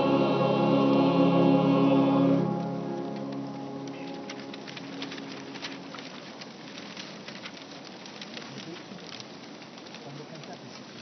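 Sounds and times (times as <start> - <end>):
choir singing chord: 0.0 - 5.9
people shuffling: 0.0 - 7.8
footsteps: 2.4 - 7.9.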